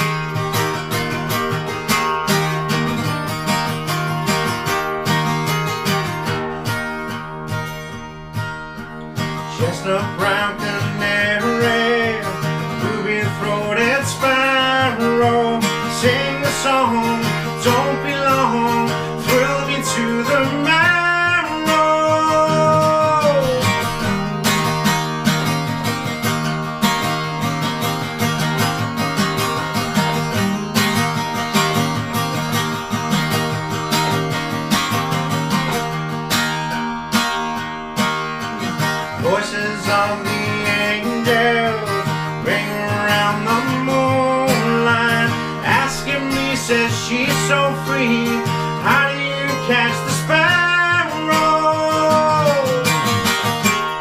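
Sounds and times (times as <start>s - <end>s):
acoustic guitar strumming: 0.0s - 54.0s
person singing: 9.4s - 24.2s, 39.1s - 54.0s.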